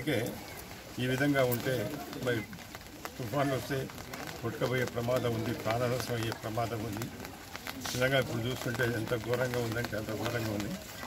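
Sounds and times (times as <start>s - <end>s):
man talking in a low voice: 0.0s - 2.6s, 3.2s - 7.2s, 7.8s - 10.9s.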